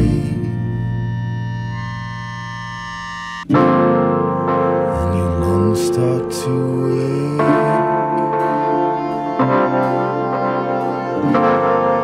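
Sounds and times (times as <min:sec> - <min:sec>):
keyboard chords: 0:00.0 - 0:12.0.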